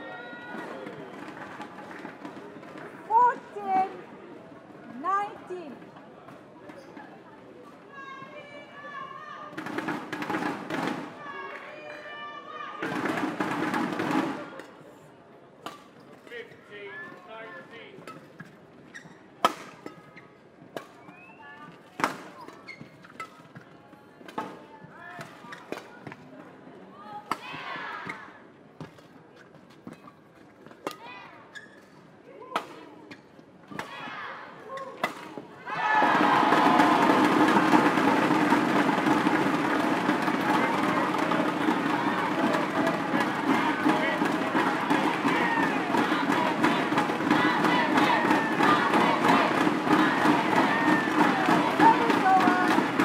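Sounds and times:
crowd noise: 0.0s - 53.0s.

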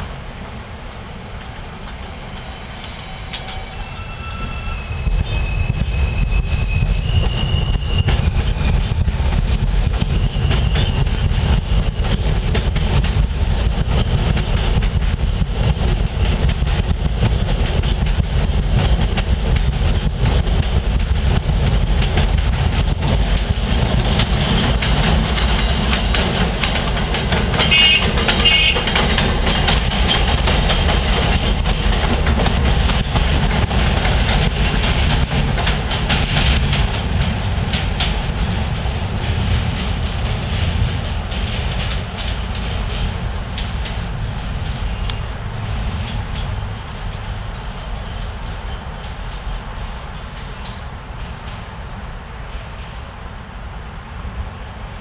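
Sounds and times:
train wheels rumbling on rails: 0.0s - 55.0s
high wheel squeal: 2.2s - 9.4s, 10.0s - 11.2s.

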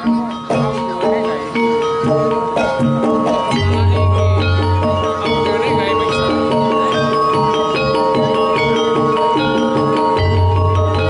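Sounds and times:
metal mallet percussion: 0.0s - 11.0s.

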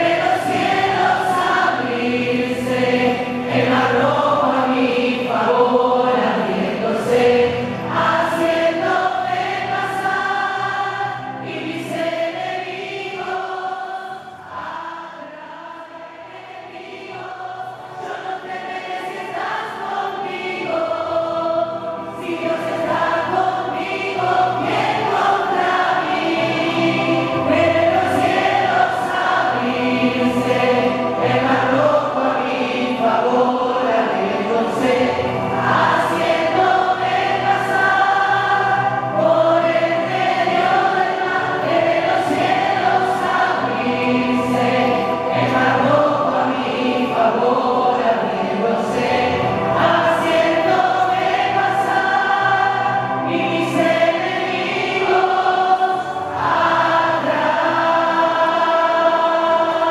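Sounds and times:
choir singing worship song: 0.0s - 59.9s.

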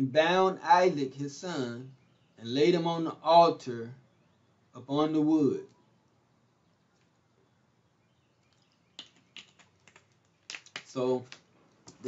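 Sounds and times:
plastic bottle clicks and crackles: 8.4s - 12.0s.

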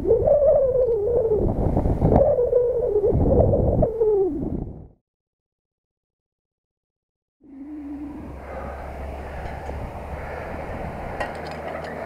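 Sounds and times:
wind buffeting microphone: 0.0s - 5.0s, 7.5s - 12.0s
wavering wind whistle: 7.4s - 11.3s.

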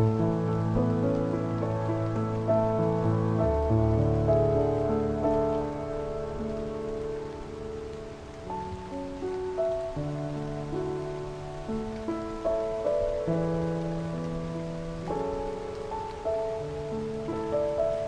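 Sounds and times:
calm piano improvisation: 0.0s - 18.0s
rain: 0.0s - 18.0s.

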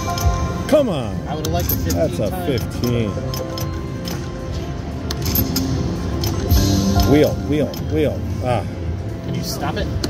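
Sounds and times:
electronic game music: 0.0s - 1.3s.

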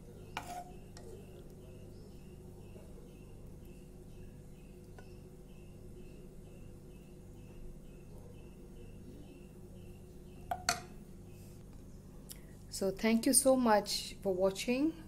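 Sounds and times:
faint high chirp: 0.0s - 12.0s
low steady hum: 0.0s - 15.0s
spoon clinking on plate: 0.4s - 1.0s.

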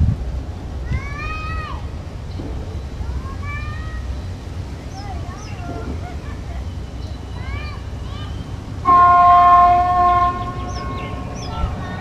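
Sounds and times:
wind on microphone: 0.0s - 3.2s
diesel train rumbling: 0.0s - 12.0s.

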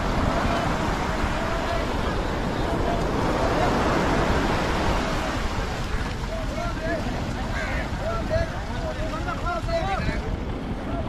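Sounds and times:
surf breaking on beach: 0.0s - 11.0s
wind rumbling on microphone: 0.0s - 11.0s.

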